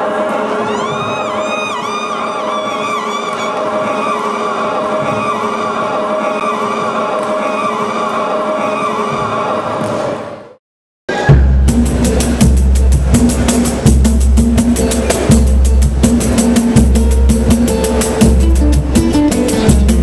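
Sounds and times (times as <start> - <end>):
voices chanting: 0.0 - 9.9
woman wailing into microphone: 0.6 - 4.2.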